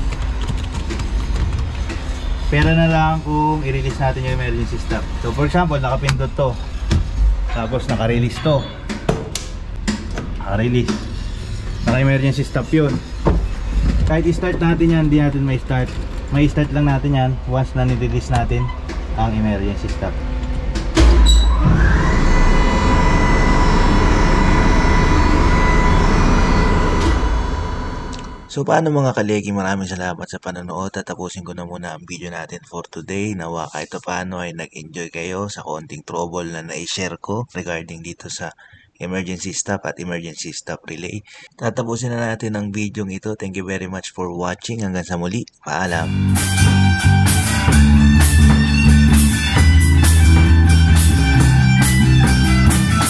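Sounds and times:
low machinery rumble: 0:00.0 - 0:28.5.

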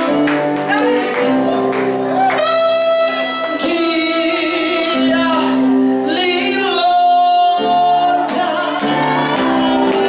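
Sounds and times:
gospel singing: 0:00.0 - 0:10.0.

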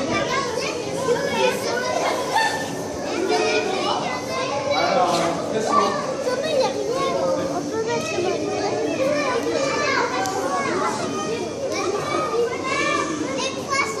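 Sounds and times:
children chattering and calling out: 0:00.0 - 0:14.0.

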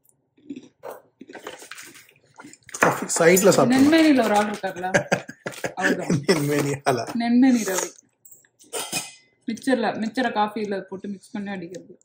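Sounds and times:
woman speaking: 0:03.6 - 0:05.1, 0:05.7 - 0:07.9, 0:09.5 - 0:12.0.

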